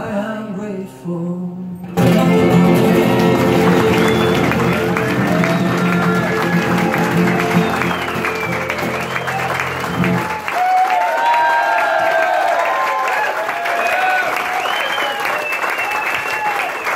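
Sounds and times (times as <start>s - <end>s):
acoustic guitar and keyboard chord: 1.8s - 9.2s
audience clapping: 2.0s - 16.9s
crowd cheering: 2.0s - 16.9s.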